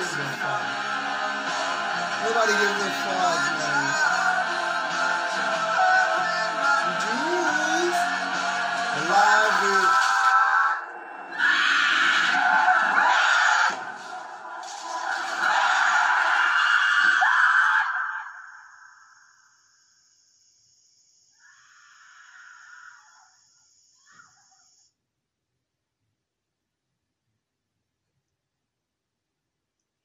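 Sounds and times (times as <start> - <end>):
harsh distorted screaming: 0.0 - 19.6, 21.4 - 23.4.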